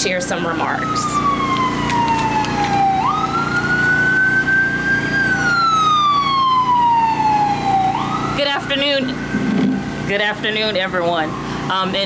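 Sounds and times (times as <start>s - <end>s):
emergency siren wailing: 0.0s - 12.0s
steady low hum: 0.0s - 12.0s.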